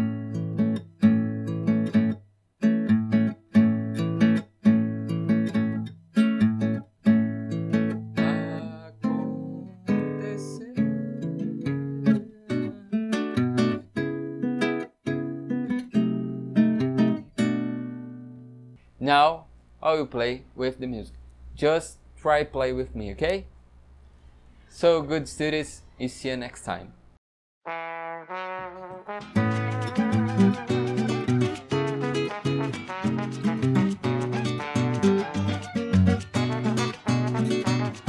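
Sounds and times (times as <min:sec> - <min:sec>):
acoustic guitar samba rhythm: 0:00.0 - 0:18.8, 0:28.8 - 0:38.0.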